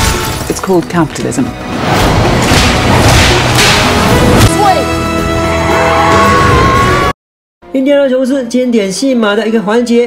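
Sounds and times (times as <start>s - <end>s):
action music: 1.3s - 7.1s
crashes and impacts: 1.7s - 4.6s.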